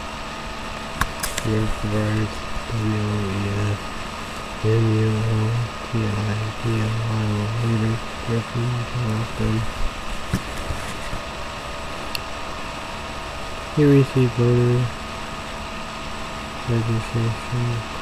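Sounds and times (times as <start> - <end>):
faint electronic whine: 0.0 - 18.0
man talking distorted: 1.4 - 3.8, 4.6 - 9.7, 13.8 - 14.9, 16.6 - 17.9.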